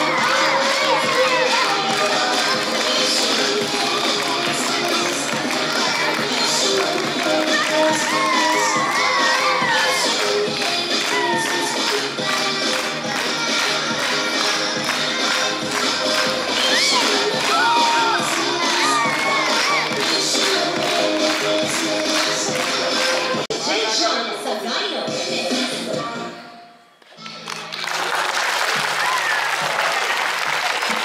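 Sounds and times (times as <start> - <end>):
women clapping and cheering: 0.0 - 23.5, 27.2 - 31.0
music: 0.0 - 31.0
high whooping shouts: 16.6 - 19.9.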